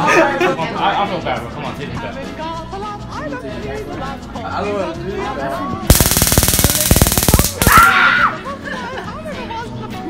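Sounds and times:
stun gun crackling: 5.9s - 8.0s.

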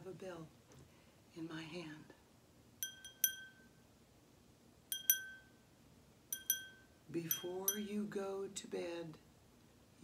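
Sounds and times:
glass hand bell ringing: 2.8s - 3.8s, 4.9s - 5.6s, 6.3s - 7.9s.

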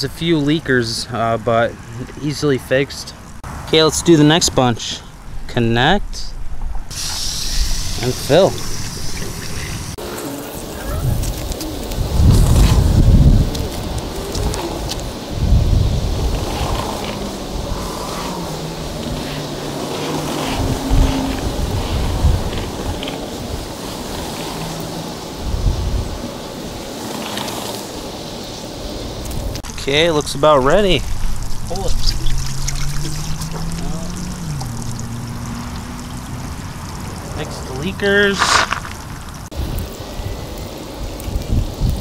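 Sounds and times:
water from hose hissing: 6.9s - 42.0s
low rumbles: 7.6s - 26.3s, 29.1s - 42.0s.

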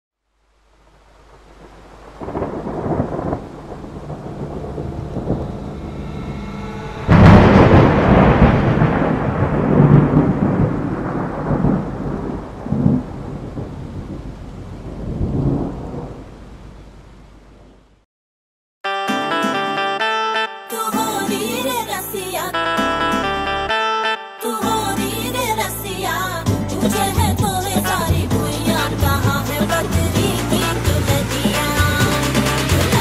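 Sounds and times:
rain: 0.2s - 18.0s, 28.2s - 33.0s
sharp thunderclap: 1.6s - 16.3s, 26.5s - 33.0s
rolling thunder: 1.6s - 16.7s.

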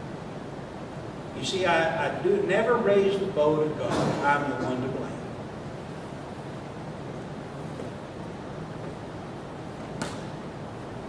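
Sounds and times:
room hiss: 0.0s - 11.0s.

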